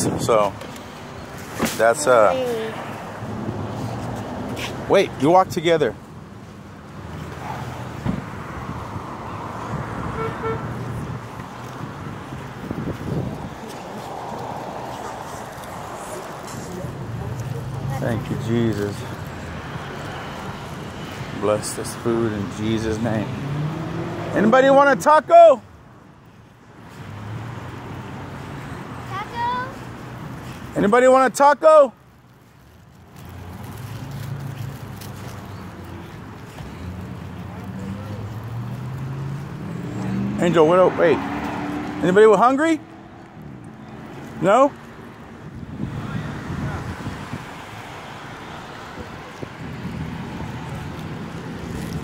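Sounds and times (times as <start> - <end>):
road traffic noise: 0.0 - 52.0
short horn toot: 10.2 - 10.7.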